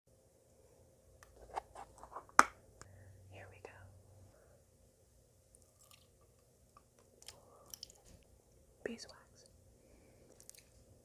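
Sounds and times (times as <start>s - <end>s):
soft whispering: 3.3s - 4.6s, 8.8s - 9.6s.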